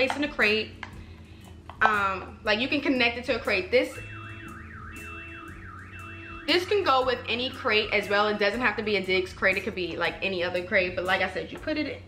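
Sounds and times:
electronic alarm warbling: 0:03.9 - 0:08.2.

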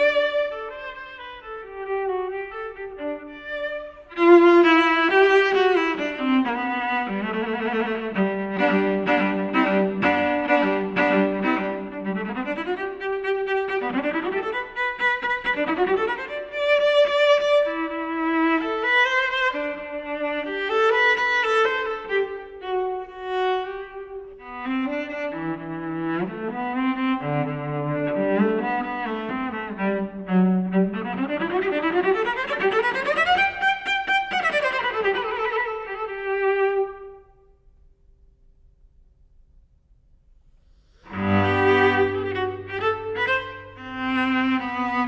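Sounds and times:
bowed cello: 0:00.0 - 0:37.3, 0:40.9 - 0:45.0.

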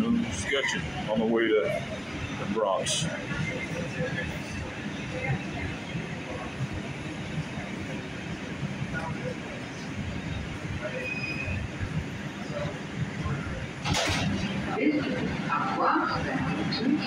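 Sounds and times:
subway train rumbling: 0:00.0 - 0:17.0.

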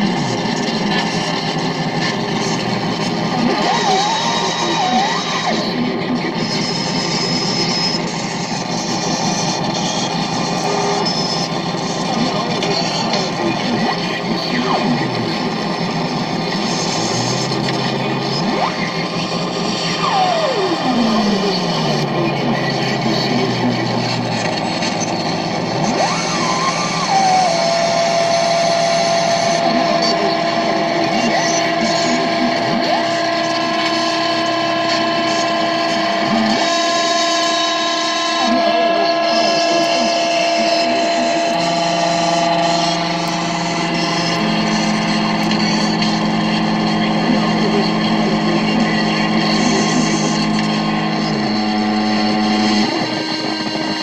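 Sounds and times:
electronic noise music drones: 0:00.0 - 0:54.0.

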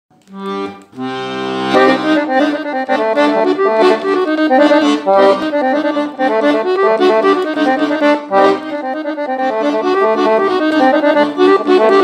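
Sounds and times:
accordion playing fast folk melody: 0:00.3 - 0:12.0.

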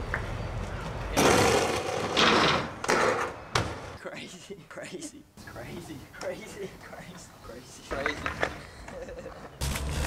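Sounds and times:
skateboard wheels rolling on pavement: 0:00.0 - 0:04.0.

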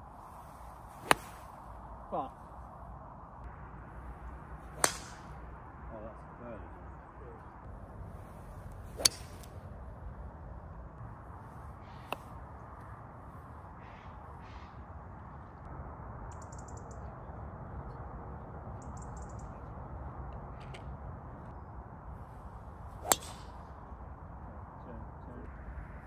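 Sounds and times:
outdoor background noise: 0:00.0 - 0:26.0
golf club striking ball: 0:01.0 - 0:01.4, 0:04.7 - 0:05.4, 0:09.0 - 0:09.5, 0:23.0 - 0:23.6
bird chirping: 0:16.3 - 0:17.3, 0:18.7 - 0:19.8.

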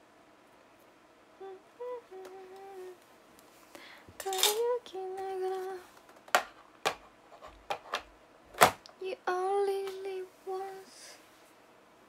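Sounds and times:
woman humming a slow tune: 0:01.4 - 0:03.0.

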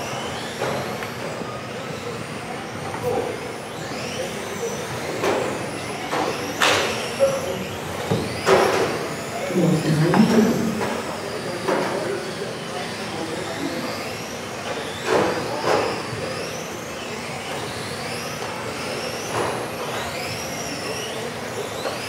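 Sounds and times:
electric motors whining: 0:00.0 - 0:22.0.

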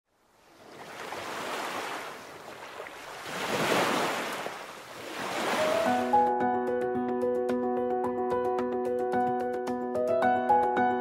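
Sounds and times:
music: 0:05.6 - 0:11.0.

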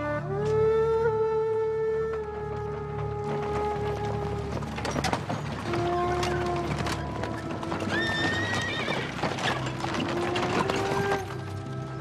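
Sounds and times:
background music: 0:00.0 - 0:12.0
hooves clopping on dirt road: 0:00.3 - 0:12.0
horse whinnying: 0:05.6 - 0:11.4.

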